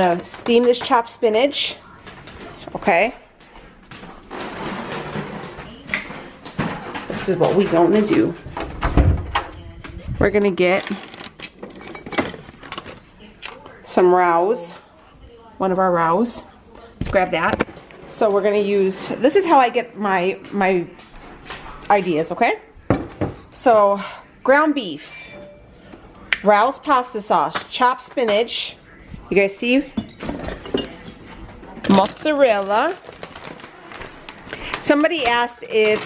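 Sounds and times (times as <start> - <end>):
woman speaking: 0.0 - 3.3, 7.1 - 8.4, 9.4 - 11.1, 13.2 - 21.0, 21.8 - 22.7, 23.5 - 25.4, 26.4 - 30.0, 31.7 - 33.1, 34.6 - 36.0
plastic bags rustling: 9.9 - 13.2, 30.2 - 36.0.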